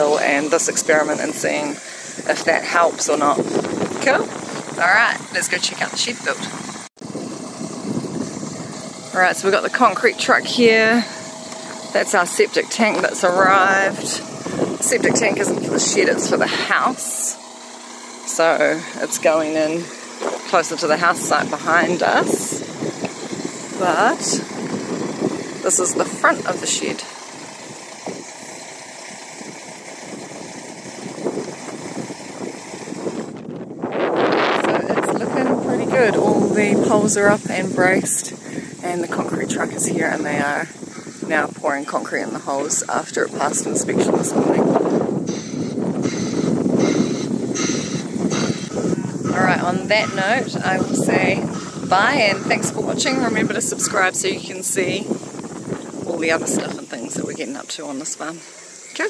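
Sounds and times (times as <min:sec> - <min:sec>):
truck engine running: 0:00.0 - 0:59.0.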